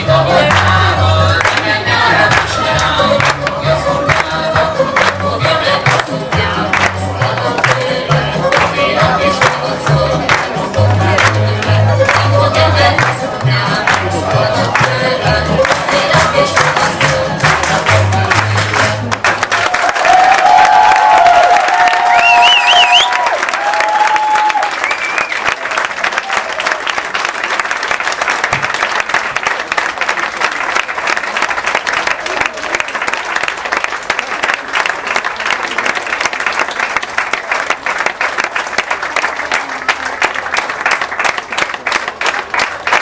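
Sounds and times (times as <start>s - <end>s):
audience applauding: 0.0s - 43.0s.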